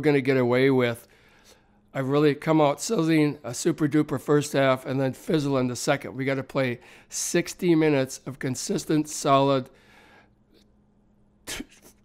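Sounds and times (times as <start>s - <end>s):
man's sharp breath: 1.1s - 1.8s, 6.8s - 7.1s, 9.8s - 10.4s.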